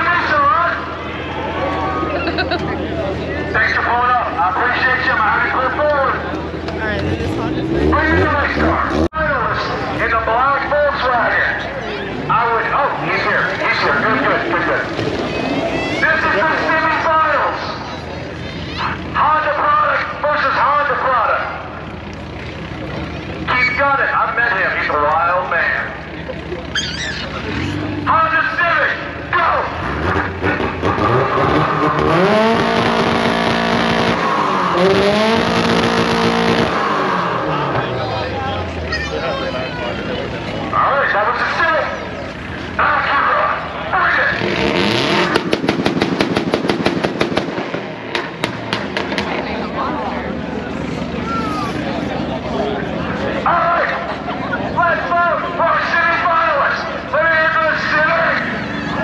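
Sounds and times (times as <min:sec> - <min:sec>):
crowd chatter: 0:00.0 - 0:59.0
drag car engine revving: 0:00.0 - 0:59.0.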